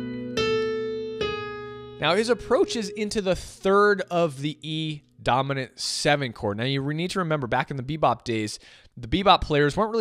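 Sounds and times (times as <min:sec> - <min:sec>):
piano chord and notes: 0:00.0 - 0:04.4.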